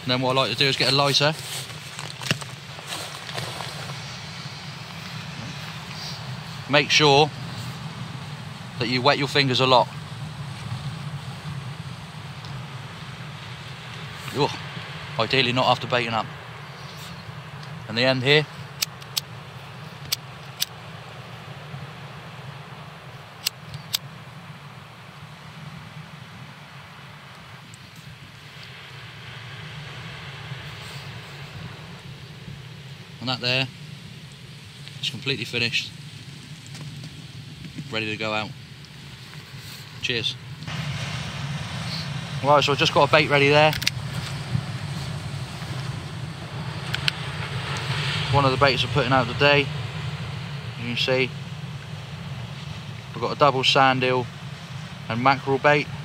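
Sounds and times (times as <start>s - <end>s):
faint hiss: 0.0s - 56.0s
low outdoor rumble: 0.0s - 56.0s
steady low hum: 0.0s - 56.0s.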